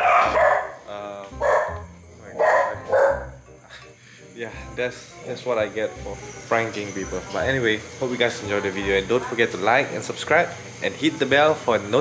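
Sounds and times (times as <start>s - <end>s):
dog barking: 0.0s - 0.8s, 1.4s - 1.8s, 2.4s - 3.4s.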